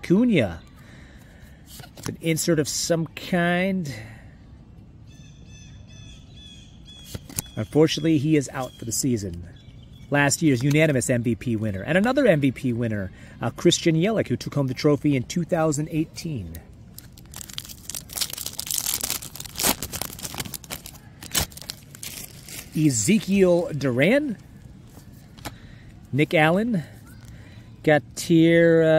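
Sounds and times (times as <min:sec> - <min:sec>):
foil wrapper crinkling and tearing: 0:16.9 - 0:23.6.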